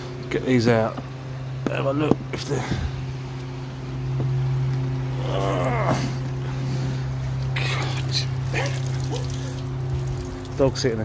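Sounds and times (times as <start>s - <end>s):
pond filter humming: 0.0s - 11.0s
water noise: 4.7s - 11.0s.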